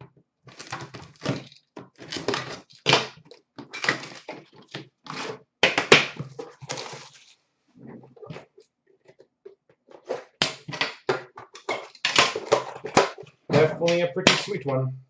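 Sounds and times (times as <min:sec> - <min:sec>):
cards and packaging rustling: 0:00.5 - 0:07.4, 0:08.2 - 0:14.8.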